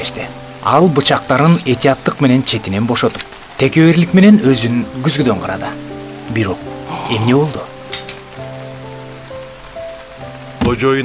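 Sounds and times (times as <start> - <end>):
narrator speaking: 0.0 - 7.7
rain: 0.0 - 11.0
soft music with long held notes: 0.0 - 11.0.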